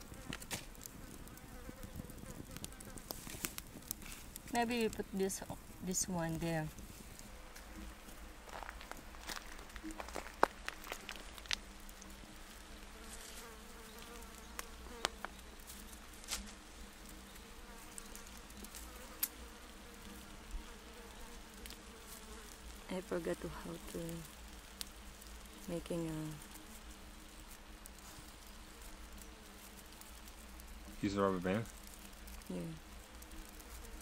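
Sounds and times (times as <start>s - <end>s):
flying insects buzzing: 0.0s - 34.0s
sharp clicks and snaps: 0.2s - 5.0s, 17.9s - 19.4s.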